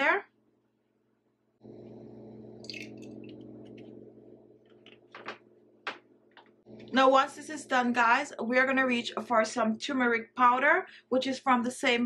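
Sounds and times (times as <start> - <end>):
steady low hum: 1.5 - 9.8.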